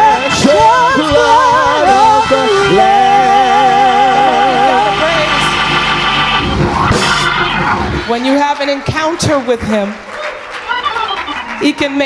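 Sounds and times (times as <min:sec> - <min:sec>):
held vocal note with vibrato: 0:00.0 - 0:07.6
organ chords: 0:00.0 - 0:09.6.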